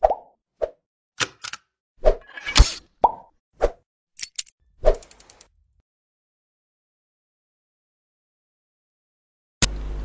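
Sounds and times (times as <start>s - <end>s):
thin high clicks: 4.2s - 5.5s.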